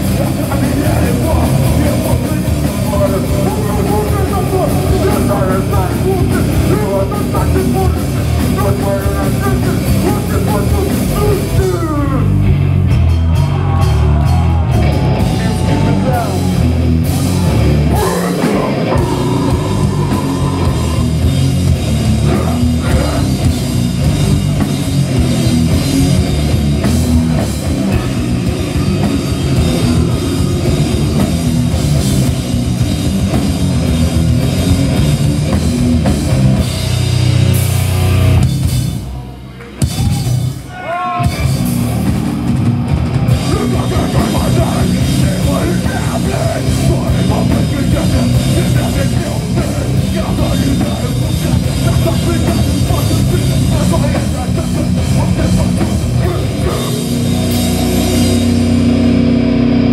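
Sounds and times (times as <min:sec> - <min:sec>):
bass guitar: 0:00.0 - 0:59.9
distorted guitars: 0:00.0 - 0:59.9
pounding drum kit with cymbals: 0:00.0 - 0:59.9.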